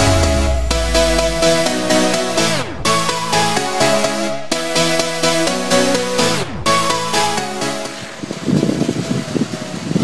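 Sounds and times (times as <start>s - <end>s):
car engine: 0.0s - 2.9s
wind buffeting microphone: 8.0s - 10.0s.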